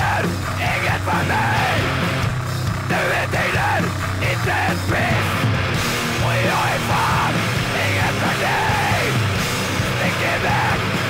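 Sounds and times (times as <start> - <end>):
hoarse shouted vocals: 0.0 - 11.0
loud guitars and drums: 0.0 - 11.0.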